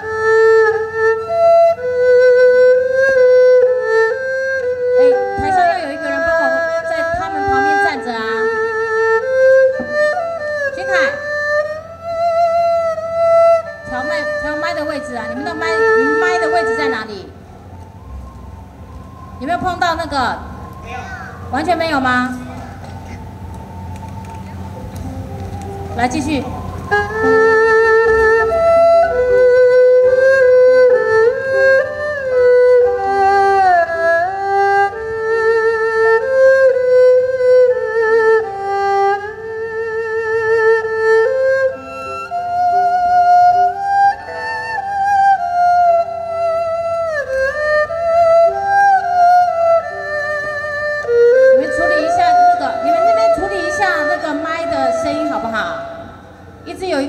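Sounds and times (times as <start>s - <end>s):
erhu playing slow melody: 0.0s - 57.0s.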